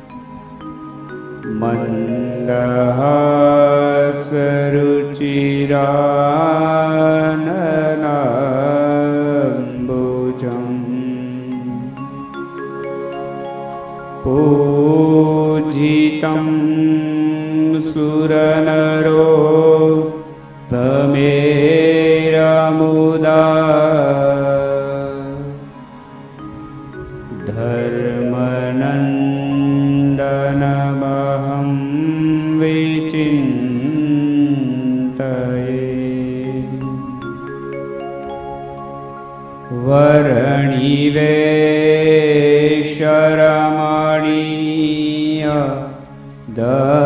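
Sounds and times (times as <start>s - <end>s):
steady drone accompaniment: 0.0s - 47.0s
man singing a chant: 1.5s - 12.0s, 14.2s - 25.7s, 27.3s - 37.3s, 39.7s - 47.0s.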